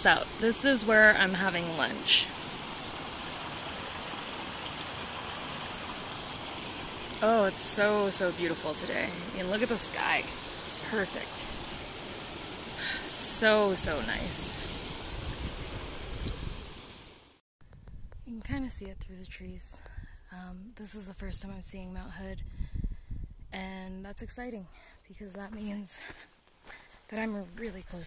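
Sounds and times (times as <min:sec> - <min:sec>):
creek running over rocks: 0:00.0 - 0:17.4
wind buffeting microphone: 0:13.5 - 0:16.8, 0:21.1 - 0:23.6.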